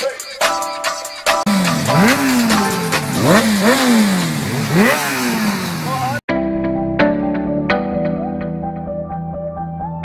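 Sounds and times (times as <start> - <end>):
motorcycle engines revving: 1.5 - 6.2.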